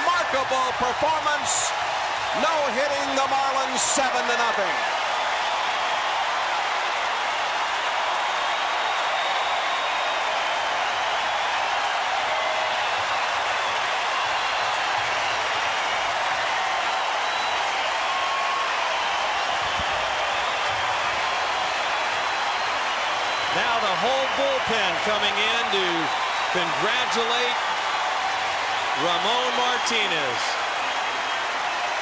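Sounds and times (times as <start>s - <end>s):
crowd cheering and clapping: 0.0s - 32.0s.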